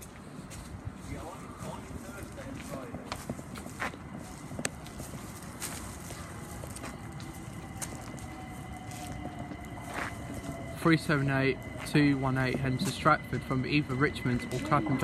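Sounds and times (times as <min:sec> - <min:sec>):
background noise: 0:00.0 - 0:15.0
electric train whine: 0:00.6 - 0:15.0.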